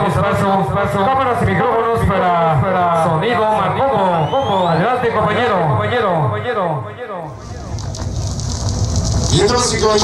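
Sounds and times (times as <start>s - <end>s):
man talking over sound system: 0.0s - 7.6s, 9.3s - 10.0s.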